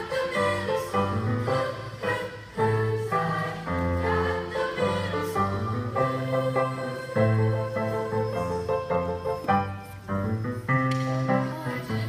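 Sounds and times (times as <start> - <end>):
children's choir singing blues: 0.0 - 10.1, 11.2 - 12.0.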